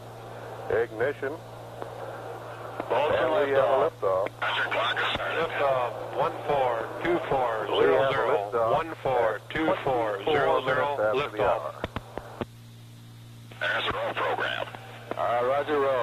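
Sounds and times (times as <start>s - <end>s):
steady low hum: 0.0s - 16.0s
radio-transmitted voices: 0.2s - 12.4s, 13.5s - 16.0s.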